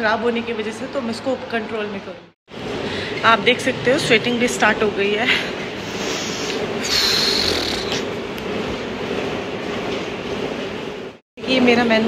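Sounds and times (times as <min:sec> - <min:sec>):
breath blown out: 0:05.8 - 0:08.1
treadmill slats rolling rumble: 0:08.1 - 0:11.9.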